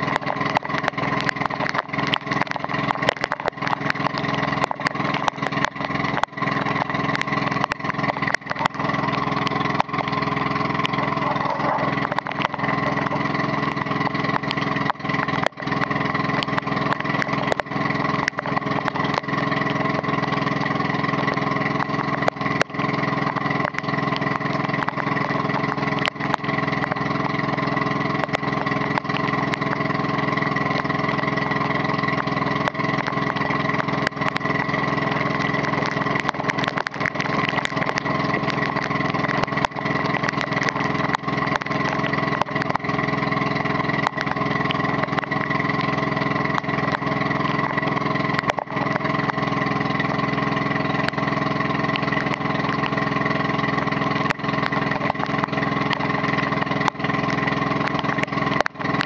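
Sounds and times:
boat engine droning: 0:00.0 - 0:59.0
rain and spray tapping camera: 0:00.0 - 0:59.0.

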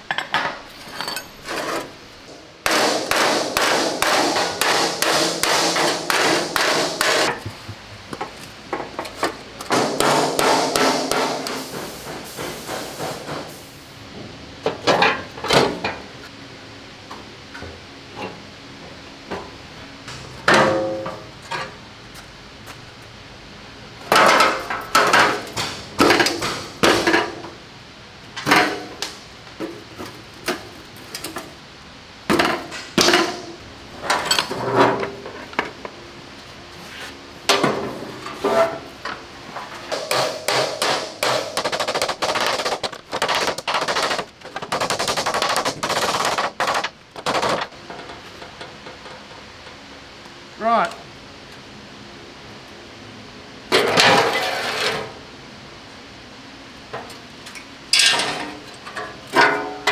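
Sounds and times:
hammer blows on sheet metal: 0:02.6 - 0:07.4, 0:09.7 - 0:13.6.

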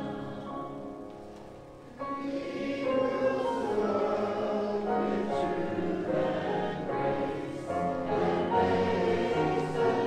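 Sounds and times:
voices singing a hymn: 0:00.0 - 0:01.1, 0:01.9 - 0:10.0.

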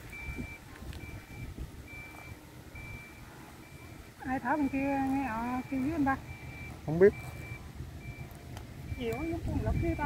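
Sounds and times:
wind rumble on microphone: 0:00.0 - 0:05.5, 0:06.2 - 0:10.0
high-pitched beep: 0:00.1 - 0:10.0.

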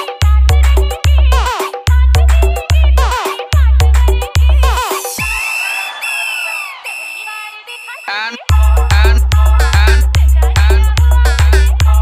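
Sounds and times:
high whistle-like synth tones: 0:05.2 - 0:09.1.

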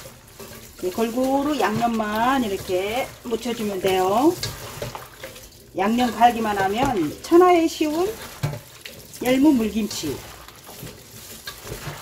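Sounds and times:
wet rustling and squishing of leaves: 0:00.0 - 0:12.0.

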